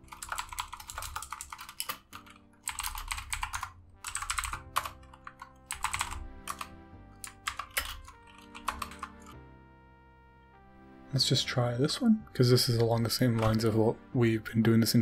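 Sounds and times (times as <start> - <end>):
computer keyboard typing: 0.0 - 9.4, 12.5 - 13.8
soft background music: 0.0 - 15.0.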